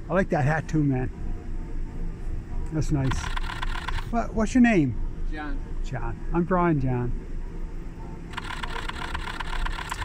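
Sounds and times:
street traffic noise: 0:00.0 - 0:10.0
camera shutter clicking in a burst: 0:03.0 - 0:04.1, 0:08.3 - 0:10.0.

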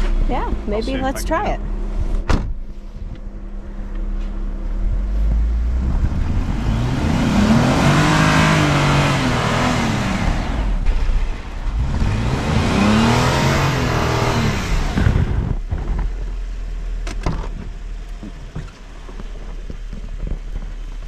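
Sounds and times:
car engine revving: 0:00.0 - 0:20.7
tyres spinning in snow: 0:17.7 - 0:21.0.

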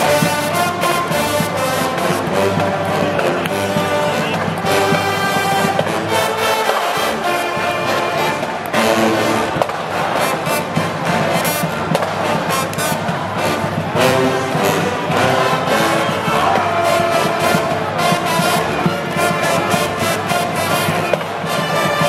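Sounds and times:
brass band playing: 0:00.0 - 0:22.0.

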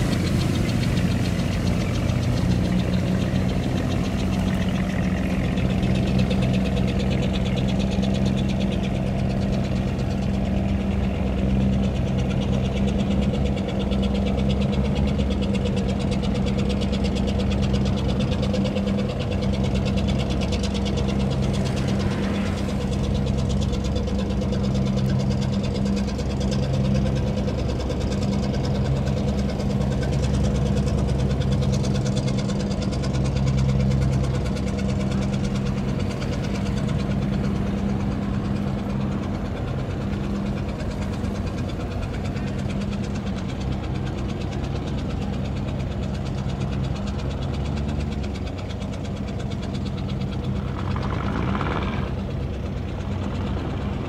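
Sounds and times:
boat engine running: 0:00.0 - 0:54.0.

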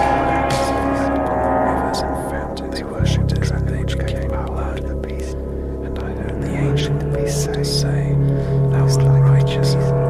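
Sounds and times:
rock music: 0:00.0 - 0:03.9
low drone: 0:00.0 - 0:10.0
sustained instrument notes: 0:00.0 - 0:10.0.

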